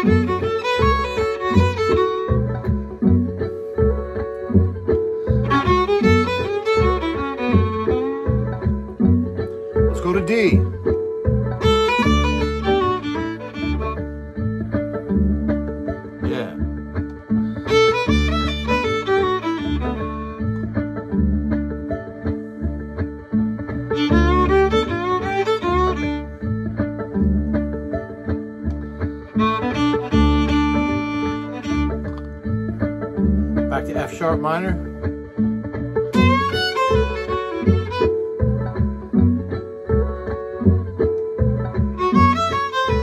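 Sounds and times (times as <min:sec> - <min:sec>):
bass and beat backing groove: 0:00.0 - 0:43.0
blues fiddle phrases: 0:00.0 - 0:43.0.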